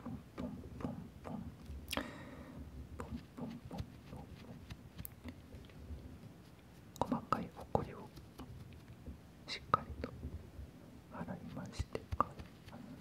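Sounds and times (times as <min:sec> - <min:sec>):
man whispering: 0:00.0 - 0:01.6, 0:03.0 - 0:04.7, 0:07.0 - 0:08.2, 0:09.4 - 0:10.2, 0:11.1 - 0:13.0.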